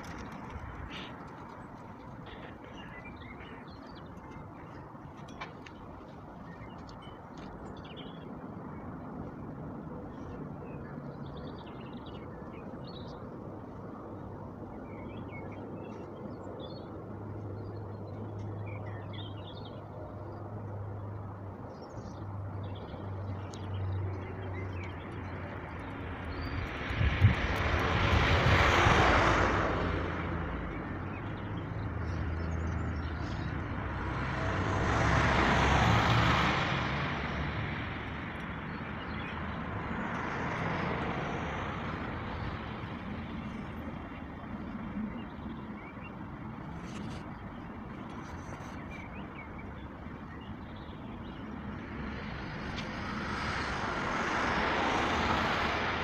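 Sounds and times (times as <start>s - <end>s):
vehicles passing: 0.0s - 56.0s
low engine hum: 17.4s - 56.0s.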